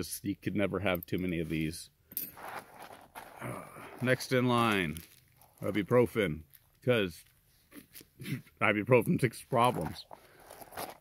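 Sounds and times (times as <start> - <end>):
small items rustling in bag: 2.4 - 8.2, 9.5 - 11.0.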